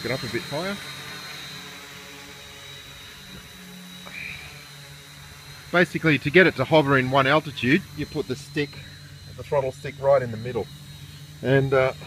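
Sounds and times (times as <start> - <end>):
quadcopter motors humming: 0.0 - 12.0
thin high whine: 0.0 - 12.0.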